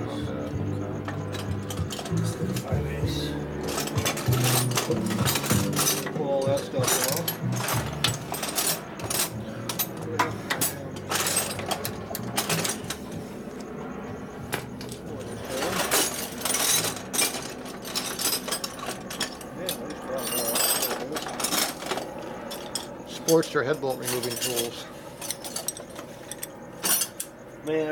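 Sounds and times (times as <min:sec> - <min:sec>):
metallic clinks of tools and parts: 0:00.1 - 0:13.8, 0:14.5 - 0:27.5.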